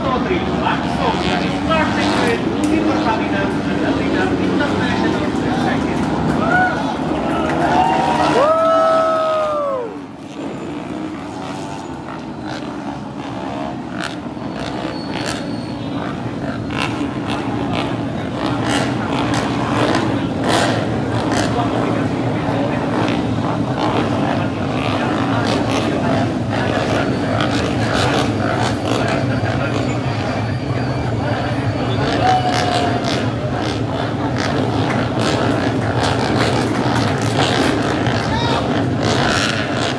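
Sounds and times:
drone of racing motorcycle engines: 0:00.0 - 0:39.9
motorcycle passing: 0:00.0 - 0:39.9
spectators chattering: 0:00.0 - 0:39.9.

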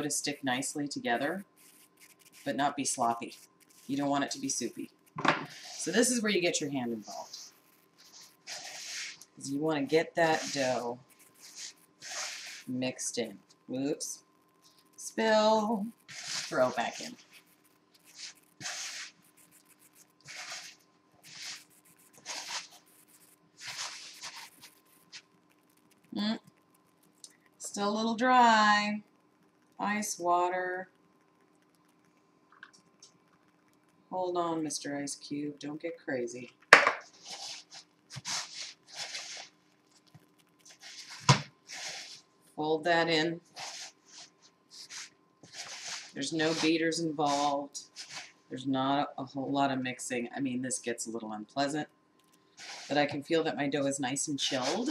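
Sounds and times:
hands squeezing crumbly dough: 0:00.0 - 0:27.6, 0:36.4 - 0:42.4, 0:43.5 - 0:48.4, 0:52.2 - 0:53.2.

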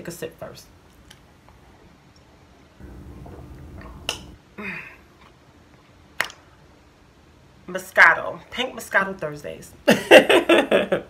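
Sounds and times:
lip smack: 0:06.2 - 0:06.4.

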